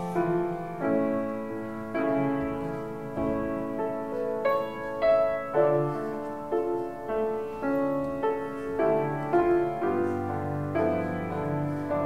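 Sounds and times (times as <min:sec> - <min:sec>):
piano playing slow chords: 0:00.0 - 0:12.0.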